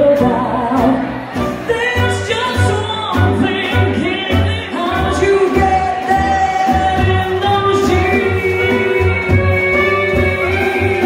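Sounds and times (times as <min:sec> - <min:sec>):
jazz band playing: 0:00.0 - 0:11.0
upright bass: 0:00.0 - 0:11.0
woman singing: 0:00.0 - 0:11.0
trumpet: 0:01.3 - 0:11.0.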